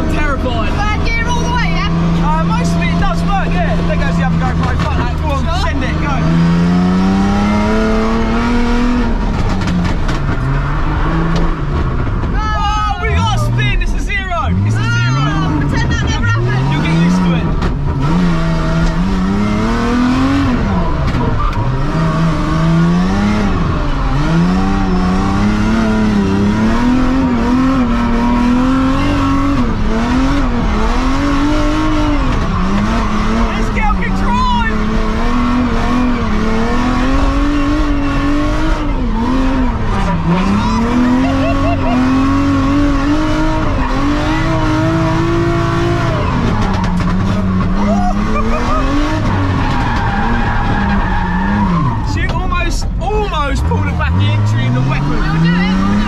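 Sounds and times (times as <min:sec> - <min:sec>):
car engine revving hard: 0:00.0 - 0:56.0
tyres squealing: 0:39.3 - 0:53.0.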